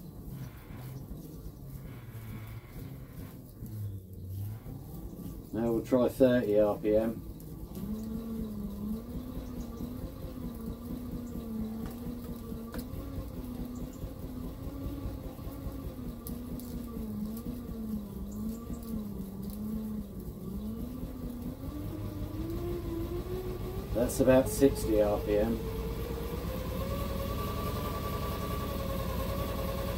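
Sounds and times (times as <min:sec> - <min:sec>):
electric motor whine: 0:00.0 - 0:29.9
low rumble of flywheel: 0:00.0 - 0:29.9.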